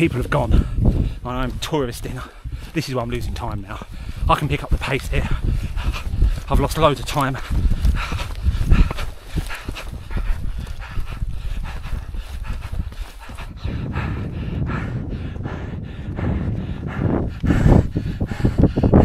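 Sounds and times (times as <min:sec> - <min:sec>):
man panting hard: 0:00.0 - 0:19.0
wind rumble on microphone: 0:00.0 - 0:19.0.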